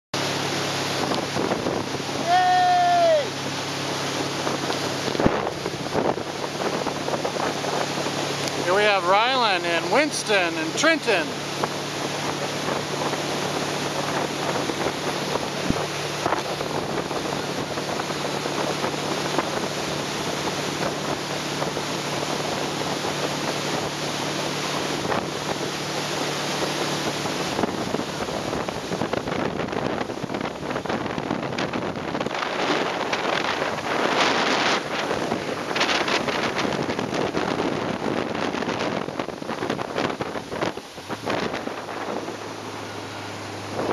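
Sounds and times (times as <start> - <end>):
boat engine running: 0.2 - 43.9
water rushing in wake: 0.2 - 43.9
wind buffeting microphone: 0.2 - 43.9.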